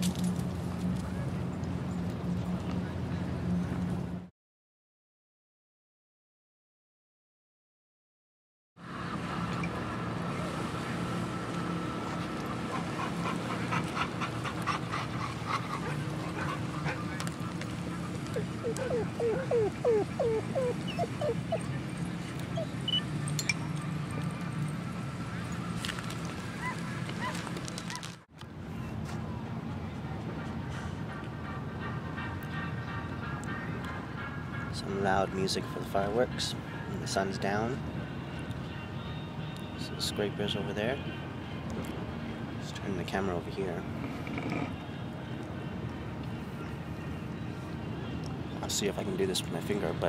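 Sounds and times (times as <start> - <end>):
distant music: 8.8 - 27.4, 29.1 - 50.0.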